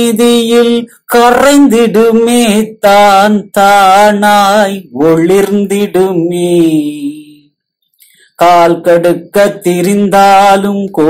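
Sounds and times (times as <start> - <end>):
man singing chant-like song: 0.0 - 11.0.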